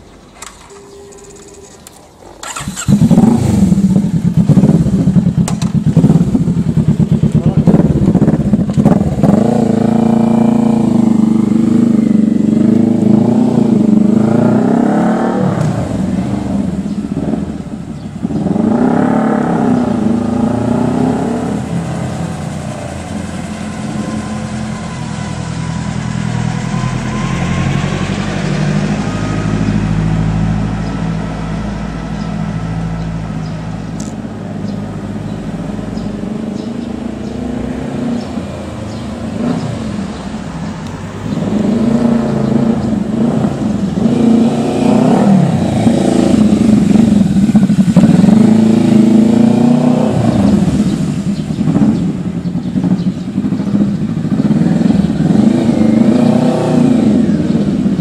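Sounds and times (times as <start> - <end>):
motorcycle engine starting and idling: 0.0 - 37.4, 38.1 - 58.0
motorcycle accelerating through gears: 2.4 - 58.0.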